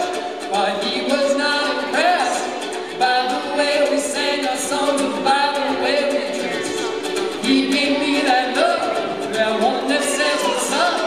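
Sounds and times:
ukulele strumming: 0.0s - 11.0s
man and girl singing in harmony: 7.4s - 11.0s.

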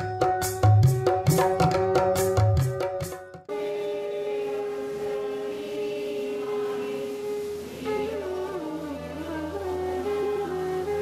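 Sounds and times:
devotional music: 0.0s - 11.0s.

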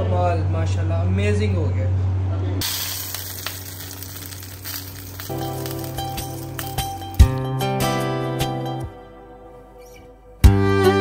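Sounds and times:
hot oil sizzling: 2.6s - 8.1s
background music: 5.1s - 11.0s.

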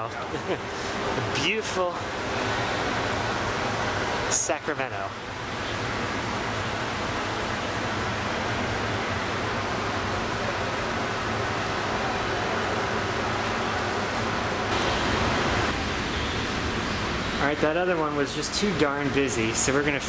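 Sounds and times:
steady rushing noise: 0.6s - 20.0s.

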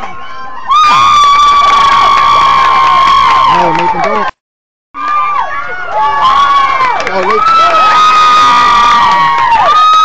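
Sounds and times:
crowd cheering: 0.0s - 4.4s, 5.0s - 10.0s.

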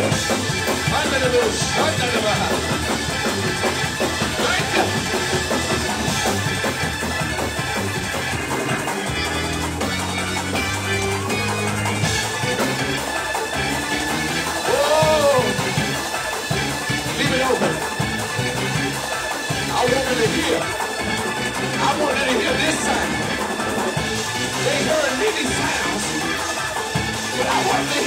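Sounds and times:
church band gospel music: 0.0s - 28.0s
drum kit beat: 0.0s - 28.0s
keyboard playing: 0.0s - 28.0s.

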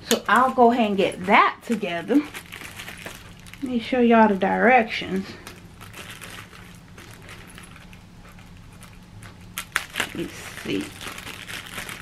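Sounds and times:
faint low hum: 0.0s - 12.0s
plastic bag rustling: 0.0s - 12.0s.

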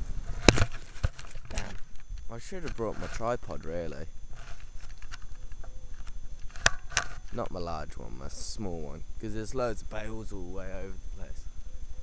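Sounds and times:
camera handling rumble: 0.2s - 3.3s, 4.3s - 7.5s.

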